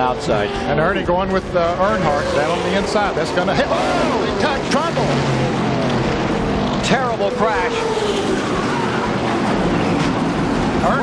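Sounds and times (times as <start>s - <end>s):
race car engines: 0.0s - 11.0s.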